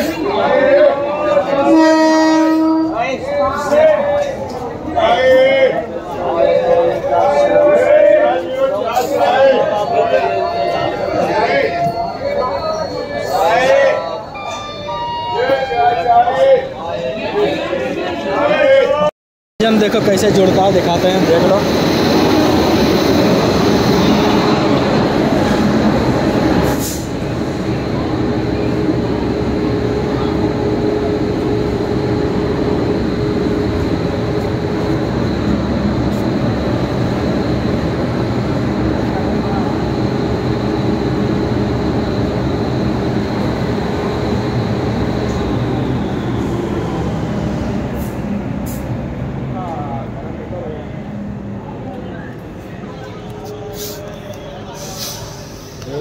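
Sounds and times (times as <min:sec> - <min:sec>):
locomotive hum with high whine: 0:00.0 - 0:18.7, 0:19.8 - 0:56.0.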